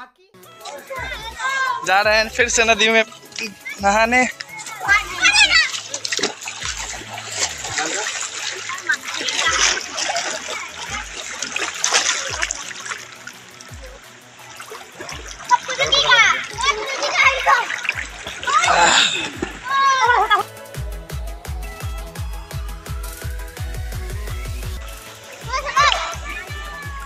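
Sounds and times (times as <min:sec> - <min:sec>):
faint music beat: 0:00.0 - 0:27.0
water splashing: 0:00.6 - 0:20.5, 0:24.2 - 0:27.0
people shouting: 0:15.2 - 0:20.4, 0:25.4 - 0:27.0.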